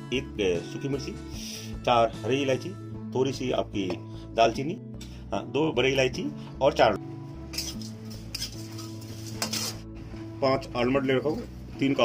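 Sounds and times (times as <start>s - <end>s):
metal spoon scraping spices in pan: 7.6s - 9.8s.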